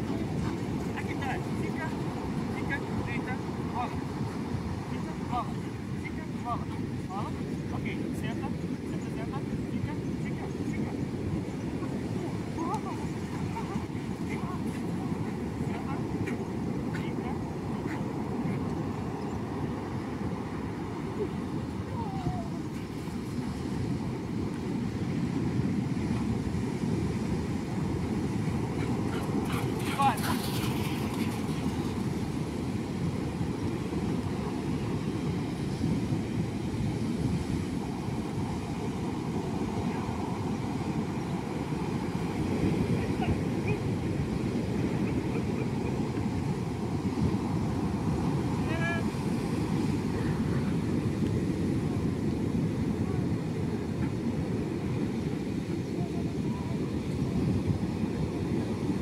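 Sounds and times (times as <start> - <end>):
breaking surf rumble: 0.0 - 59.0
wind buffeting microphone: 0.0 - 59.0.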